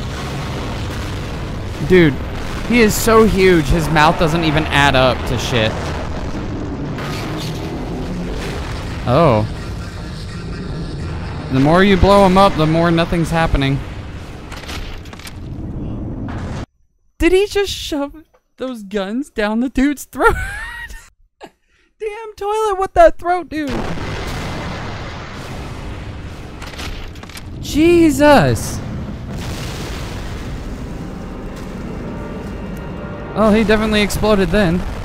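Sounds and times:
rumbling explosion and machinery din: 0.0 - 16.7, 23.7 - 35.0.

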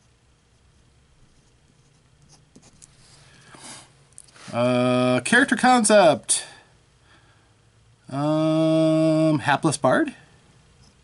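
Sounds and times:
pen scratching on paper: 1.3 - 2.8.

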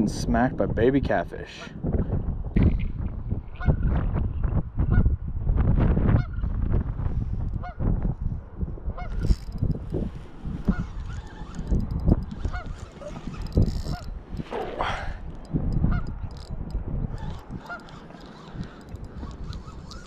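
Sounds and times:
wind rumble on microphone: 0.0 - 20.0
geese honking: 12.3 - 13.2, 17.2 - 20.0.

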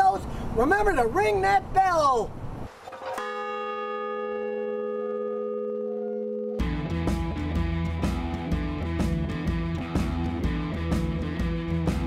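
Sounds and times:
large bell ringing: 3.2 - 6.9.

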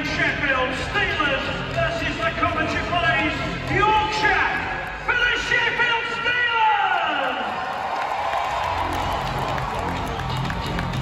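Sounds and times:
crowd noise: 0.0 - 11.0
music: 0.0 - 11.0.

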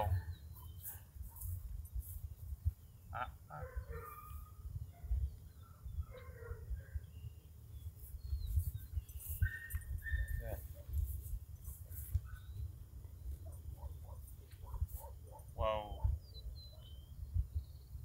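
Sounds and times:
bird chirps: 0.0 - 1.5, 2.6 - 18.0
wind rumbling on microphone: 1.2 - 18.0.

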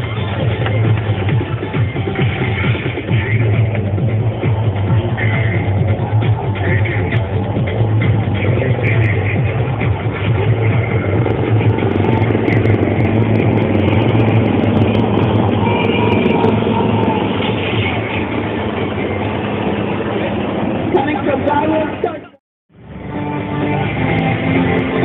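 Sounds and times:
music playing: 0.0 - 25.0
helicopter flying past: 9.2 - 22.0.

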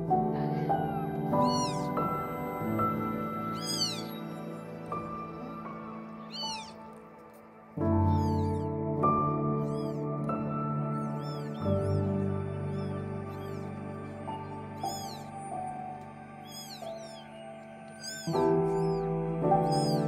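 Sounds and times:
kittens mewing: 0.0 - 8.8, 9.5 - 20.0
background music of slow chords: 0.0 - 20.0.

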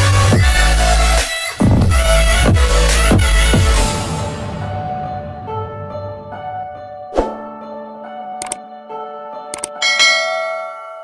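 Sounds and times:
mouse clicks: 8.4 - 8.6
bright bell ding: 9.8 - 11.0.

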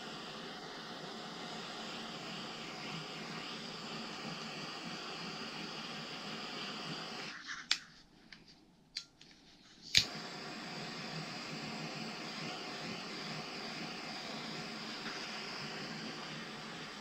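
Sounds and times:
gas torch hissing: 0.0 - 7.4, 9.8 - 17.0.

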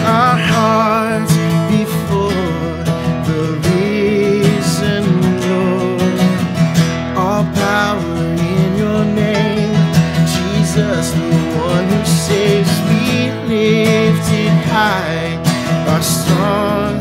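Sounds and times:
acoustic guitars strummed: 0.0 - 17.0
man singing: 0.0 - 17.0.

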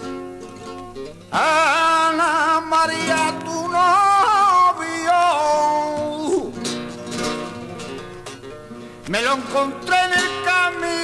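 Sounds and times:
man singing flamenco: 0.0 - 8.1, 9.0 - 11.0
flamenco guitar playing: 0.0 - 11.0.

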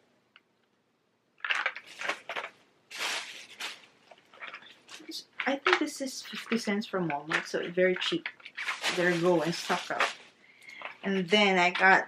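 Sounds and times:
cardboard boxes rustling: 1.6 - 5.0, 7.3 - 11.9.

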